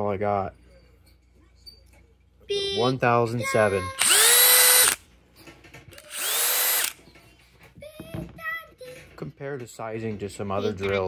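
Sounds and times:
cordless drill motor whining: 4.0s - 5.0s, 6.0s - 7.0s.

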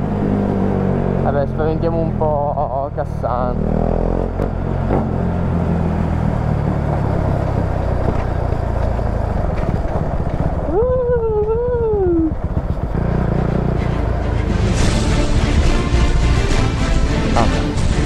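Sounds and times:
motorcycle engine running: 0.0s - 16.5s
wind on microphone: 6.5s - 13.1s.

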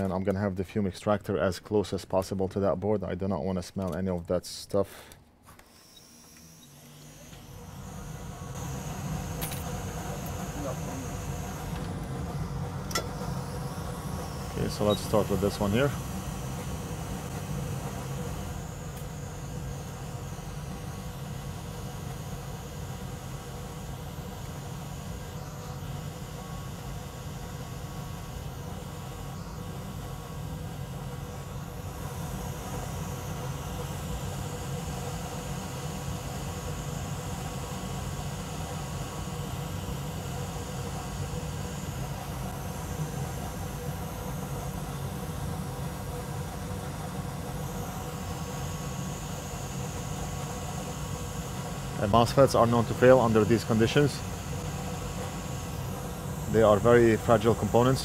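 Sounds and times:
hot-air station blowing: 4.9s - 58.0s
fume extractor fan running: 6.1s - 58.0s.

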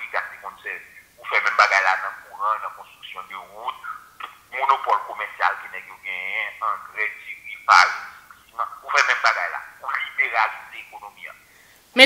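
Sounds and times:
person talking over telephone: 0.0s - 12.0s.

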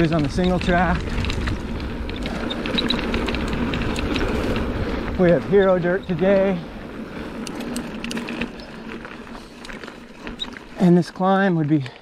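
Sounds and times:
bike tyres rolling on dirt: 0.0s - 12.0s
small clicks: 7.4s - 10.8s.

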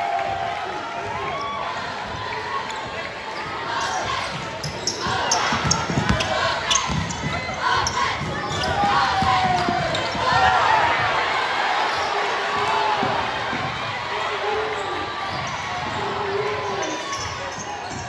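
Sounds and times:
voices of players and crowd: 0.0s - 18.0s
basketball bouncing on gym floor: 4.3s - 10.3s.

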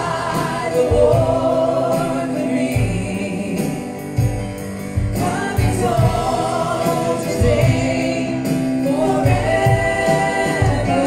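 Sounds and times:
woman singing: 0.0s - 4.2s, 5.2s - 11.0s.

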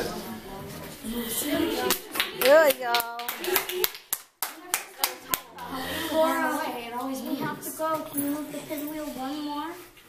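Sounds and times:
children's voices: 1.0s - 3.9s, 4.6s - 10.0s
child clapping hands: 1.8s - 5.5s.

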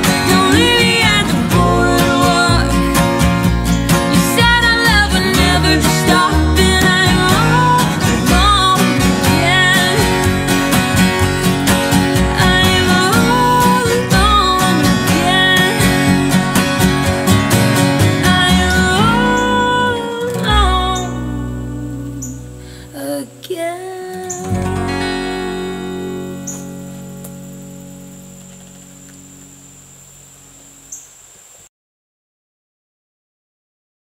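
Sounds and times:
person singing: 0.0s - 3.4s, 4.0s - 16.7s, 17.8s - 26.6s
upright bass: 0.0s - 29.8s
strummed acoustic guitars: 0.0s - 30.6s.

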